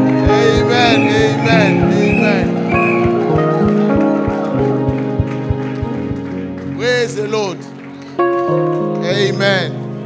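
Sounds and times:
held keyboard chords: 0:00.0 - 0:10.0
fast drum beat: 0:00.2 - 0:03.3, 0:04.3 - 0:06.2
person singing or calling out: 0:00.3 - 0:02.4.

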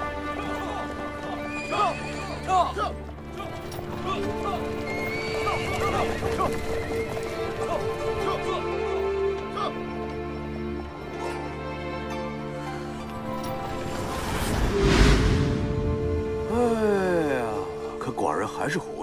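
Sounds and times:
hooves clopping: 0:00.0 - 0:11.4
background music: 0:00.0 - 0:19.0
horses neighing: 0:00.1 - 0:09.9.

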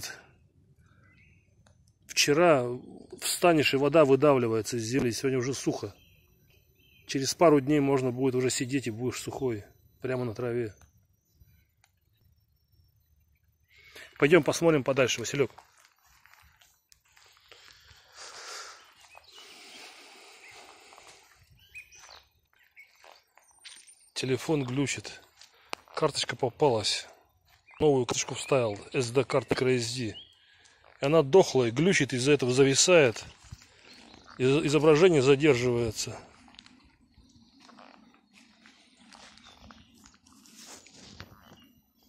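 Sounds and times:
bird chirps: 0:00.0 - 0:42.0
footsteps on dry grass: 0:14.8 - 0:26.0, 0:33.1 - 0:34.9, 0:36.0 - 0:41.7.

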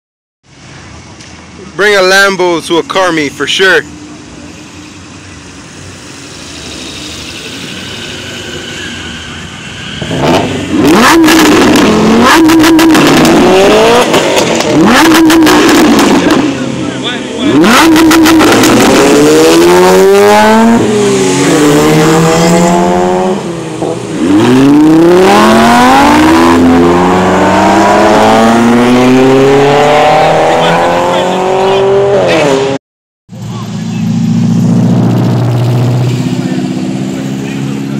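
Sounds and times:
car engine revving: 0:01.8 - 0:32.8, 0:33.4 - 0:37.9
exhaust cracks: 0:10.0 - 0:19.6.

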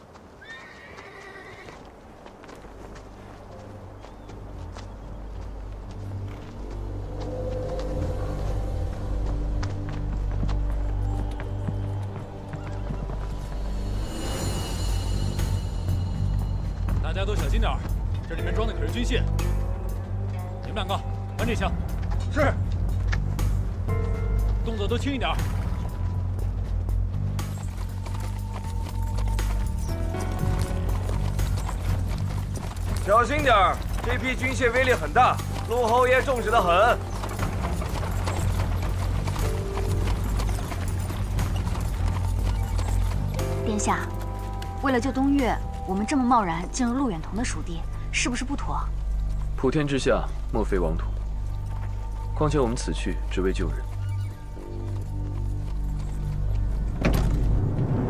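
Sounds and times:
background music: 0:00.0 - 0:58.0
hooves clip-clopping: 0:00.0 - 0:58.0
horse whinnying: 0:00.4 - 0:01.8.

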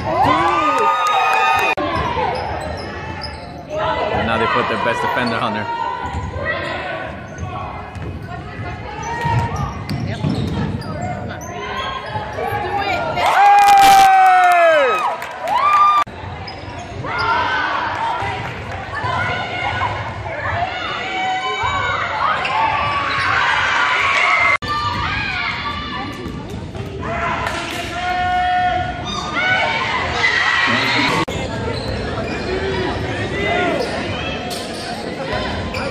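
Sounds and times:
crowd voices: 0:16.0 - 0:35.9.

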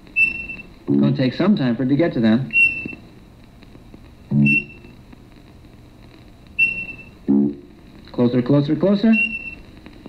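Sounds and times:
cartoon electronic beeps and tones: 0:00.2 - 0:00.7, 0:02.5 - 0:03.0, 0:04.3 - 0:04.9, 0:06.6 - 0:07.5, 0:09.2 - 0:09.6.

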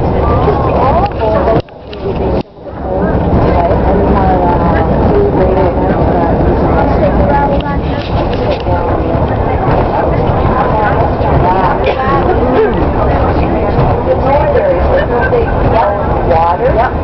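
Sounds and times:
bus rumbling: 0:00.0 - 0:17.0
passengers chattering: 0:00.0 - 0:17.0.

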